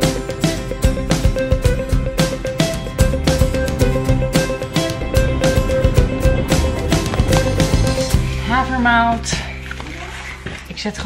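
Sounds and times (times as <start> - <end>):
plucked guitar-like music: 0.0 - 10.6.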